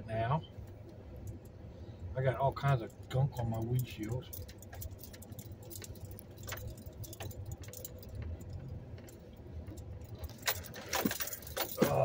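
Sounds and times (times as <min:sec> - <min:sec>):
vehicle engine rumbling: 0:00.0 - 0:12.0
light clicks and rattles: 0:02.3 - 0:12.0.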